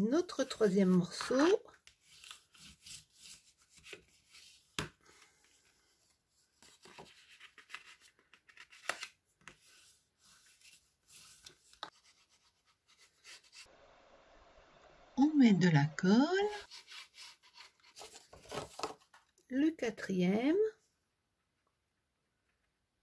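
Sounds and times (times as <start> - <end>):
bone folder scraping cardstock: 16.6 - 19.0.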